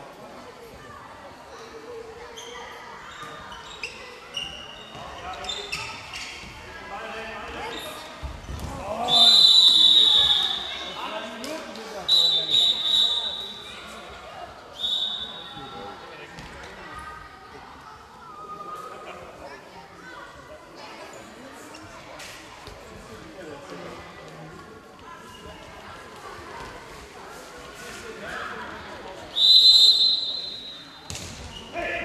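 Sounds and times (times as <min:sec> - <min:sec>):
players' voices: 0:00.1 - 0:32.0
referee's whistle blasts: 0:09.1 - 0:10.7, 0:12.1 - 0:13.7, 0:14.8 - 0:15.6, 0:29.3 - 0:31.0
ball bouncing on hall floor: 0:31.1 - 0:31.6.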